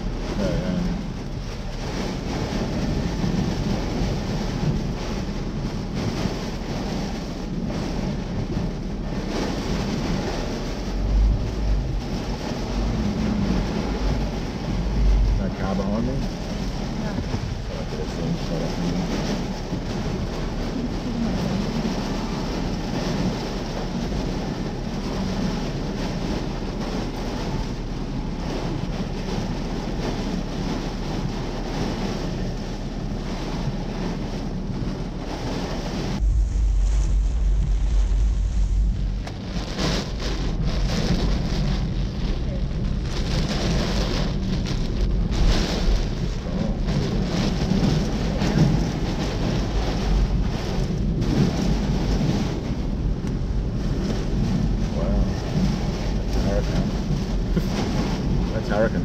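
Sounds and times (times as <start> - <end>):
loud wind and heavy rain: 0.0 - 59.0
wind buffeting microphone: 0.0 - 59.0.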